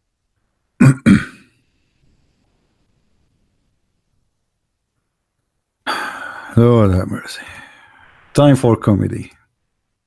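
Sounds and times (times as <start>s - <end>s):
man clearing his throat: 0.8s - 1.5s, 5.9s - 6.5s.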